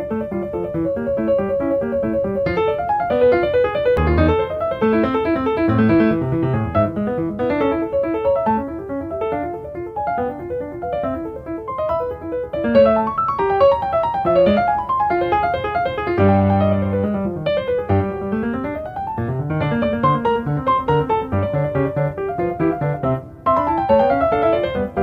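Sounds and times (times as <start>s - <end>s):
lively piano music: 0.0s - 25.0s.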